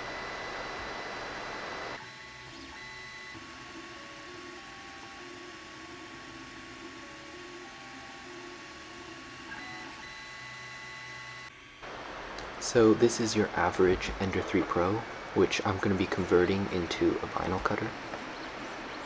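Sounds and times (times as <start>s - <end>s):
steady high hum: 0.0s - 19.0s
stepper motors whining: 0.0s - 19.0s.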